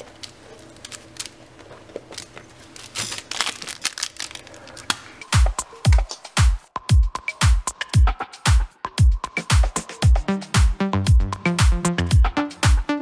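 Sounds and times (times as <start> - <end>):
dance music beat: 5.2 - 13.0.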